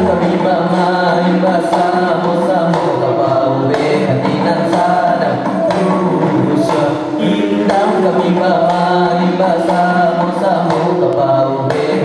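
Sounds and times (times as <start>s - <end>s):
group of voices singing: 0.0s - 12.0s
percussion: 0.0s - 12.0s.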